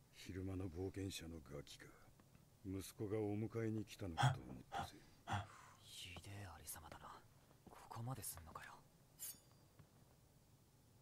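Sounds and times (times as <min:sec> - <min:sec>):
soft breathy speech: 0:04.1 - 0:08.8.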